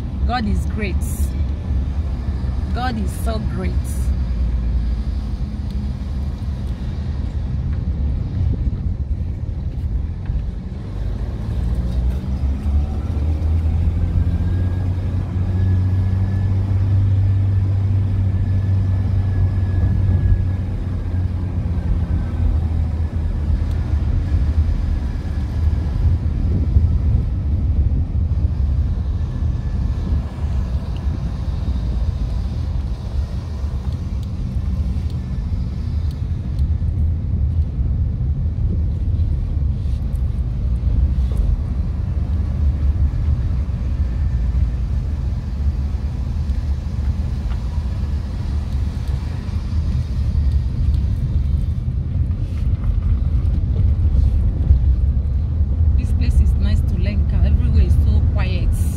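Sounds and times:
car engine and road noise: 0.0 - 58.9.

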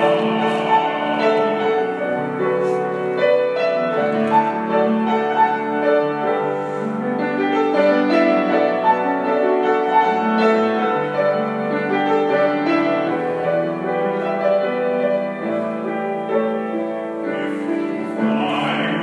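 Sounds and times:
classical piano chords: 0.0 - 19.0.

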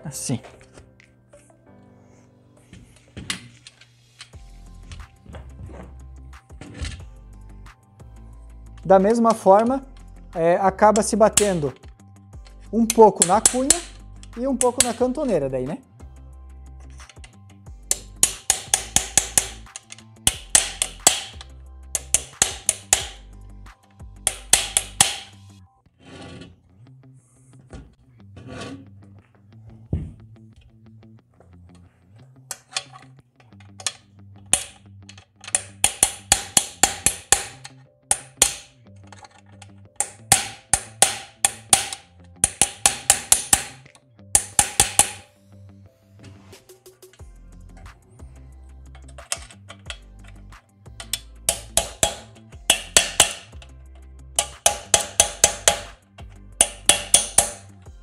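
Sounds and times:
small hammer tapping metal: 17.9 - 23.2, 24.3 - 25.4, 34.6 - 45.3, 51.0 - 53.7, 54.4 - 57.7.

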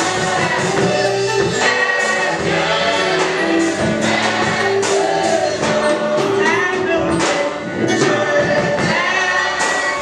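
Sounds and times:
congregation singing a hymn: 0.0 - 10.0
musical accompaniment: 0.0 - 10.0.

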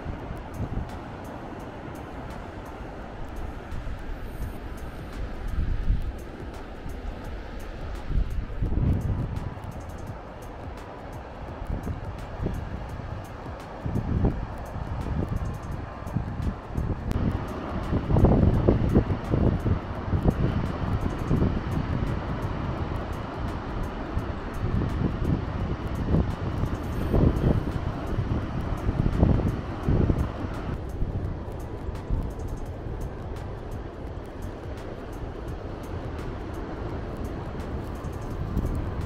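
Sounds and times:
wind buffeting the microphone: 0.0 - 39.0.

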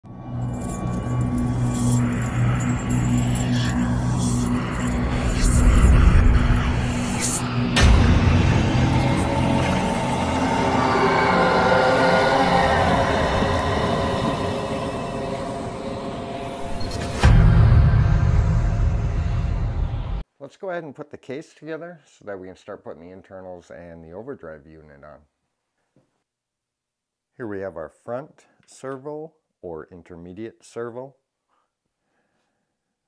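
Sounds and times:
layered tones: 0.1 - 20.2
low sustained tones: 0.1 - 20.2
heavy impact hit: 1.0 - 20.2.

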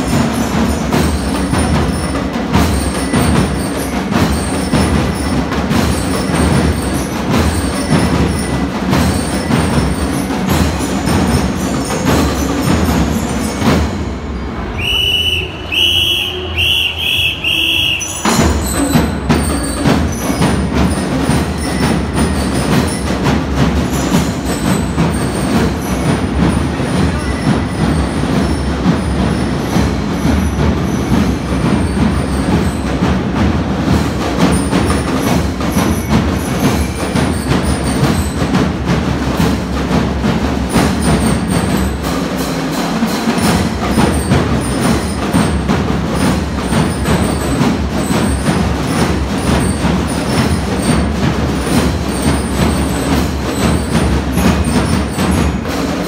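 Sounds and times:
marching band playing: 0.0 - 56.0
rapid drumbeats: 0.0 - 56.0
bell-lyre notes: 17.8 - 33.0.

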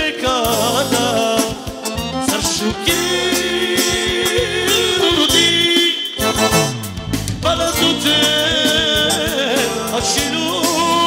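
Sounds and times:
man singing into a microphone: 0.0 - 6.8, 7.4 - 11.0
accordion music: 0.0 - 11.0.

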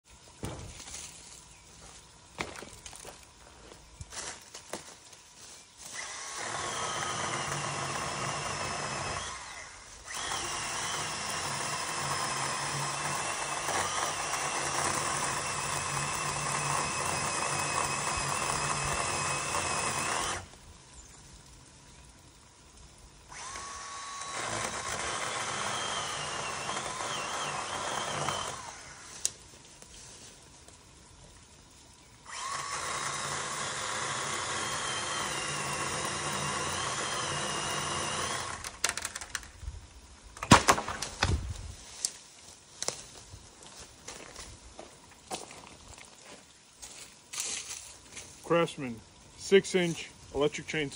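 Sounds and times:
electric chainsaw cutting wood: 5.8 - 20.8, 22.6 - 29.4, 32.2 - 39.5.

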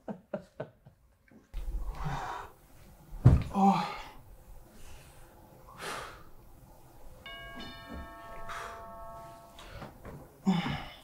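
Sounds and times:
two-note doorbell chime: 7.2 - 9.9.

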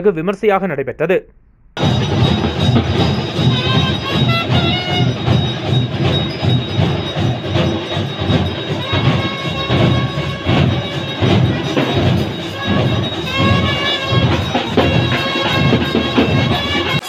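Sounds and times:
high sliding melody: 1.8 - 17.0
steady drum beat: 1.8 - 17.0.

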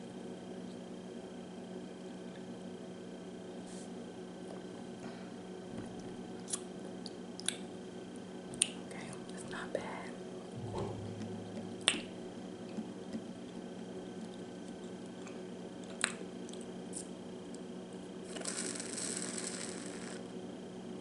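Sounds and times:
low electrical hum: 0.0 - 21.0.

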